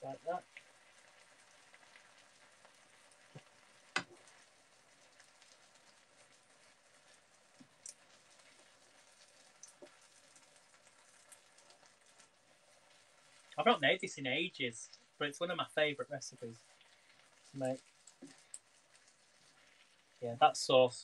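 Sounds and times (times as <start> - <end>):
stir-fry sizzling in a frying pan: 0.0 - 21.0.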